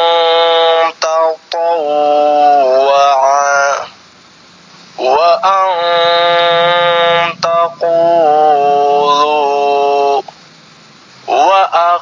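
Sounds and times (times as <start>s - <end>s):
man chanting word by word: 0.0s - 4.0s, 5.0s - 10.3s, 11.3s - 12.0s.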